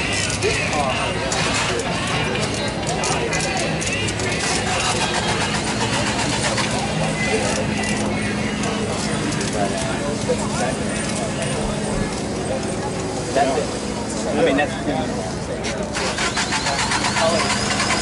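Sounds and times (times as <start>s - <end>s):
people talking: 0.0s - 18.0s.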